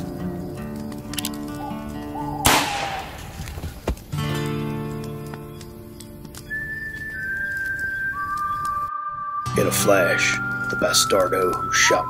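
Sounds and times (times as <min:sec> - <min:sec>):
gunshot: 0:02.4 - 0:03.3
background music of held notes: 0:04.2 - 0:12.0.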